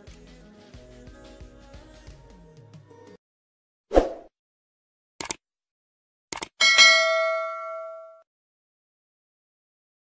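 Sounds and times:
bright bell ding: 6.6 - 8.2.

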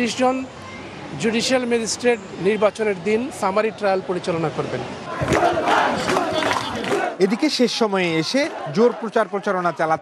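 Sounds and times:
crowd shouting: 5.1 - 10.0.

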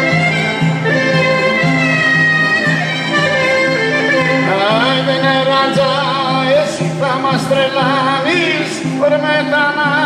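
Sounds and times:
clarinet: 0.0 - 6.6
low-note rhythm: 0.0 - 10.0
lute: 0.0 - 10.0
violin: 0.0 - 10.0.

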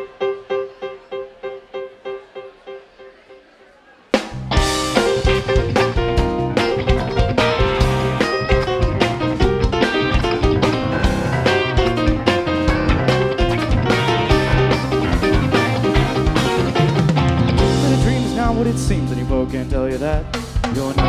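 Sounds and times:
keyboards: 0.0 - 21.0
bass guitar: 4.2 - 21.0
drum beat: 4.3 - 21.0
electric guitars: 4.4 - 21.0.

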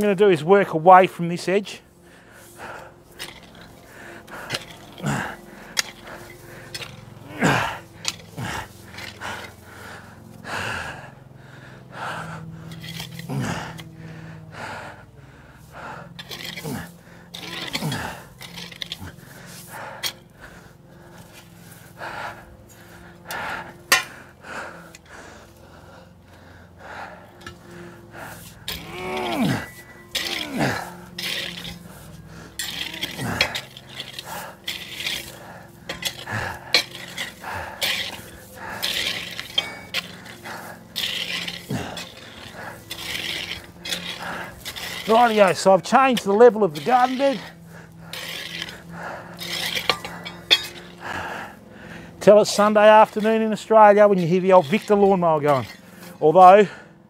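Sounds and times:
tool clinking against stones: 3.1 - 3.8, 4.4 - 9.5, 12.7 - 13.8, 16.1 - 19.2, 23.8 - 24.1, 27.4 - 51.0, 52.2 - 56.4
person grunting: 5.0 - 5.4, 7.2 - 9.4, 13.2 - 13.8, 16.6 - 18.3, 28.2 - 34.6
garden tool scraping sandy soil: 38.2 - 49.9.

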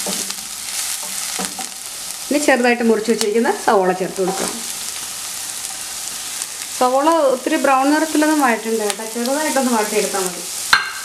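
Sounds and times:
oil sizzling in a frying pan: 0.0 - 11.0.

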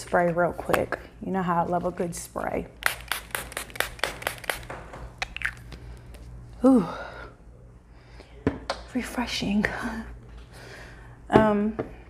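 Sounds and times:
spray bottle hissing puffs: 2.8 - 4.7.

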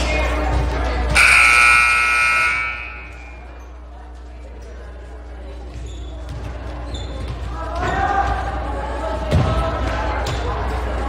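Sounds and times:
scoreboard buzzer blast: 1.2 - 3.4.

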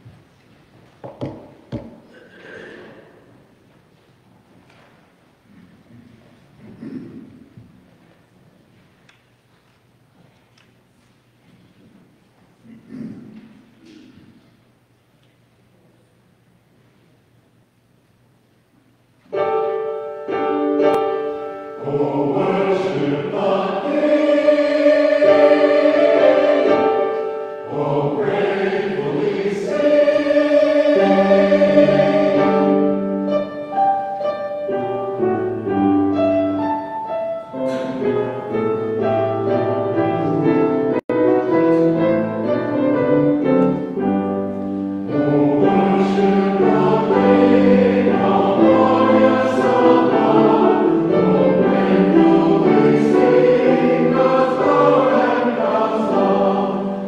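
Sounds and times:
piano playing: 19.2 - 57.0
choir singing a hymn: 19.3 - 57.0.

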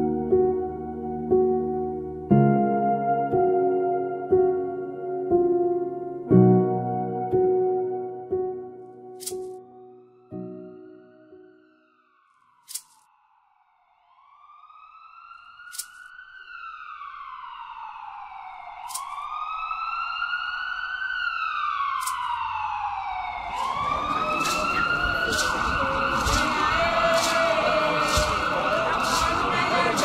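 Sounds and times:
vehicle siren wailing: 10.4 - 30.0
busy outdoor noise: 23.3 - 30.0.

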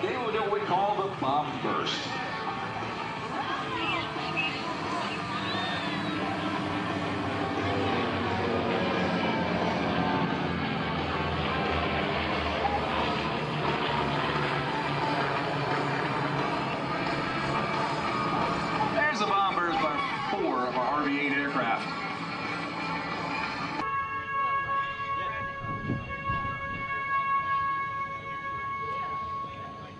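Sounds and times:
voices: 0.0 - 23.8
music: 0.0 - 29.9
propeller aircraft droning: 0.0 - 29.9.

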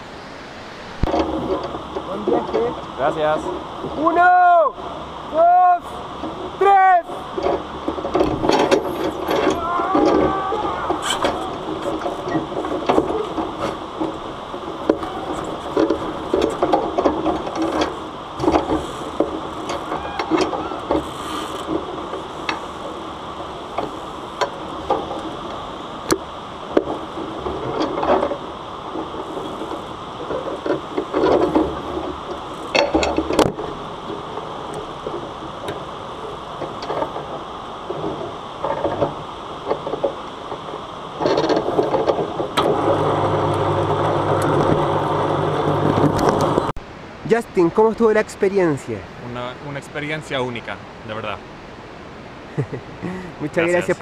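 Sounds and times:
white-water river: 0.0 - 54.0
bungee rig knocks and rattles: 7.4 - 22.7, 26.1 - 33.8
motor hum: 41.4 - 46.7.

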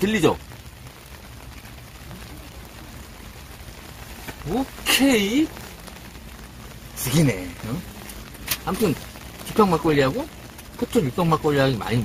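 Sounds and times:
snow falling on tent fabric: 0.0 - 12.0.

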